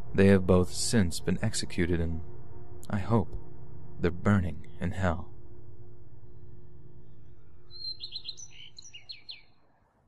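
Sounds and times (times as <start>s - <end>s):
low droning background music: 0.0s - 9.1s
high bird chirps: 7.0s - 9.6s.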